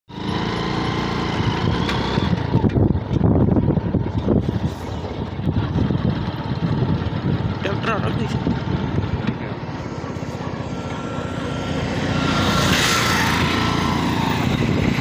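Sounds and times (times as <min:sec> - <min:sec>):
motorcycle engine running: 0:00.1 - 0:15.0
wind rumbling on microphone: 0:01.4 - 0:15.0.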